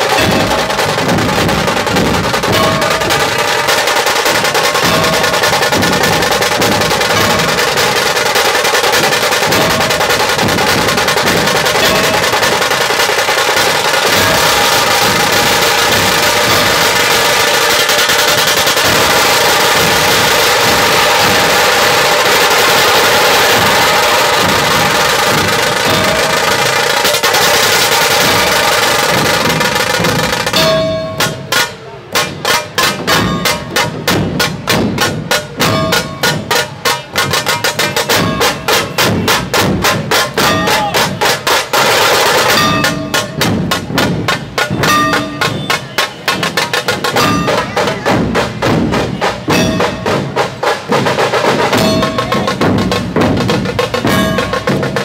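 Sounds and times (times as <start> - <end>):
drum ensemble playing: 0.0 - 55.0
fast drum roll with sticks: 0.0 - 55.0.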